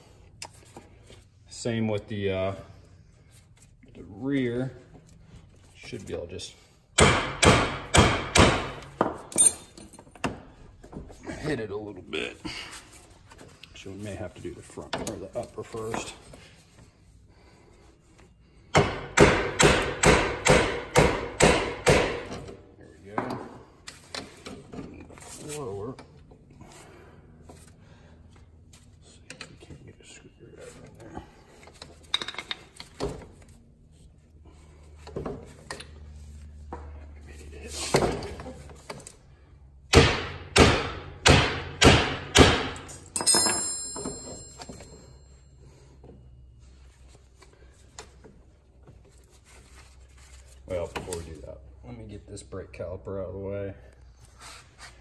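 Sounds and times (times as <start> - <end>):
hammer striking metal: 7.0 - 9.7, 18.7 - 22.3, 39.9 - 44.9.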